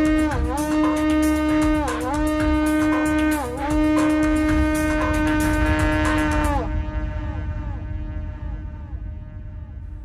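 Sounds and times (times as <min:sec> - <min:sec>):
low hum: 0:00.0 - 0:10.0
wind instrument long note: 0:00.0 - 0:10.0.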